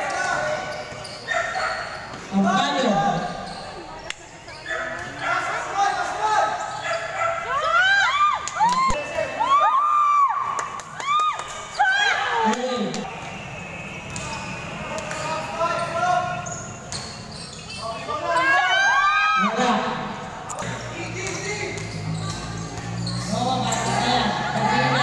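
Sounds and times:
sneakers squeaking on court floor: 0.0s - 7.4s, 12.6s - 18.9s, 20.6s - 25.0s
voices calling out: 0.0s - 25.0s
ball bouncing: 20.6s - 24.0s.

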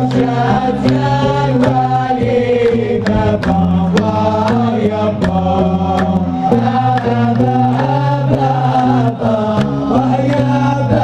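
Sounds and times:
group chanting: 0.0s - 11.0s
steady percussive beat: 0.0s - 11.0s.

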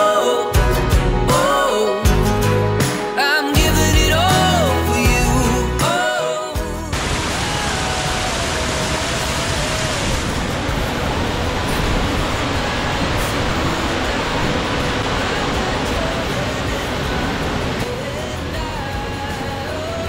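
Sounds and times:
waterfall rushing and splashing: 6.9s - 20.0s.

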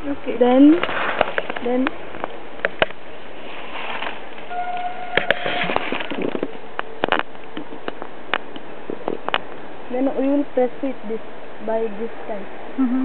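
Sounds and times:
sharp clicks and crackles: 5.2s - 9.5s.

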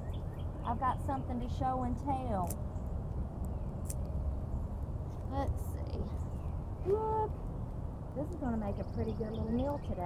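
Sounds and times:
steady low rumble: 0.0s - 10.0s
scissors snipping stem: 2.4s - 2.6s, 3.8s - 4.0s.

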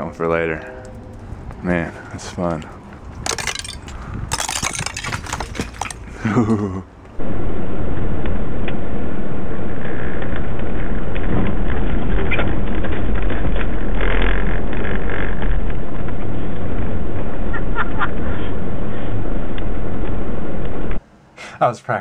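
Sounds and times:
car engine and tyre noise: 0.2s - 21.0s.

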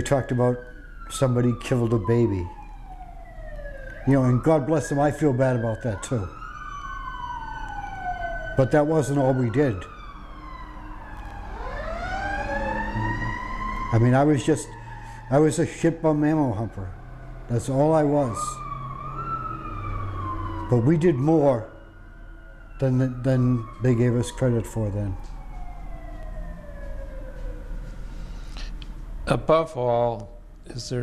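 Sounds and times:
siren wailing: 0.0s - 29.2s.

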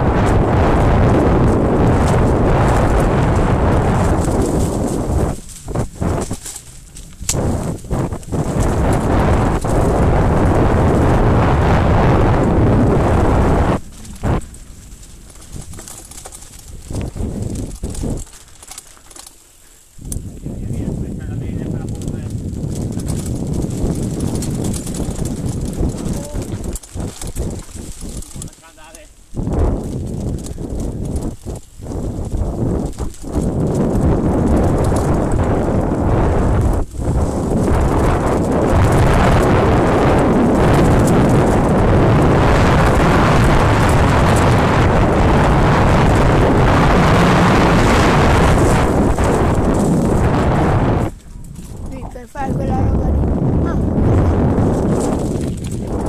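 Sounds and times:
wind rushing over microphone: 0.0s - 18.8s, 19.8s - 56.0s
bike rattling on dirt trail: 0.0s - 56.0s.

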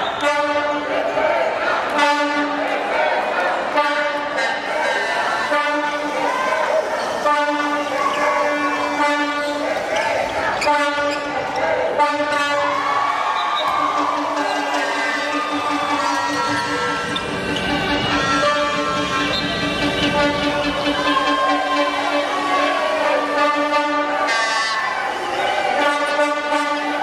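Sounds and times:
indoor crowd noise: 0.0s - 27.0s
air horn blasts: 0.1s - 1.0s, 1.9s - 2.8s, 3.7s - 6.4s, 7.2s - 9.8s, 10.6s - 27.0s.

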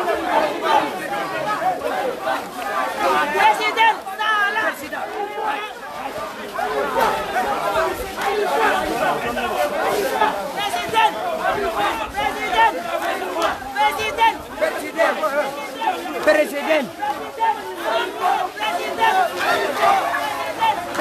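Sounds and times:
crowd talking and shouting: 0.0s - 21.0s.

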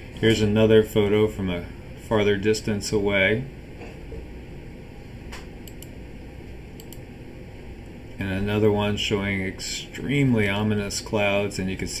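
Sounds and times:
low fan-like hum: 0.0s - 12.0s.

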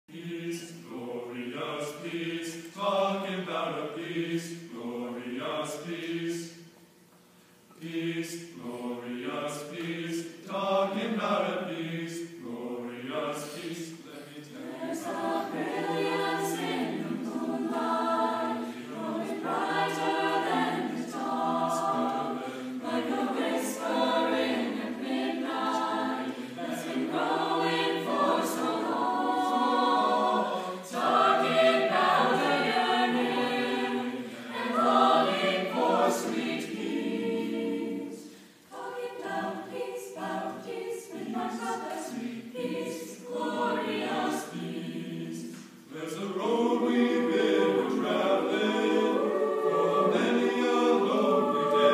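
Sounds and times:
youth choir singing: 0.1s - 6.7s, 7.7s - 51.9s.

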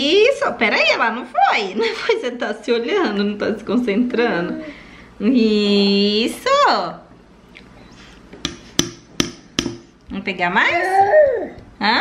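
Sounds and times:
metal spoon tapping glass bowl: 8.5s - 9.8s.

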